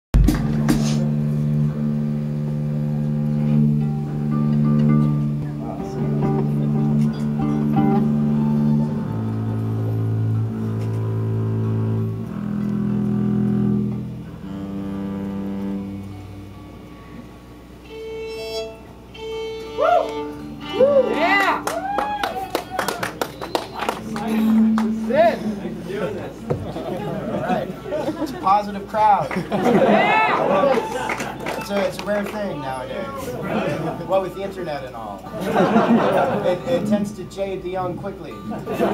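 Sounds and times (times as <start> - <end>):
audience clapping: 0.2 - 1.0, 21.1 - 25.3, 29.1 - 32.8
bowed strings playing low notes: 0.2 - 21.9, 23.7 - 28.2, 35.2 - 38.9
electric guitar: 0.2 - 26.6
audience whooping: 19.7 - 25.9, 29.6 - 32.0.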